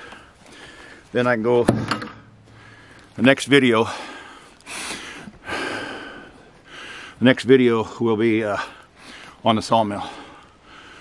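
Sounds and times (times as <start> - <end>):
man breathing: 0.0 - 1.2, 2.2 - 7.2, 8.6 - 9.4, 10.0 - 11.0.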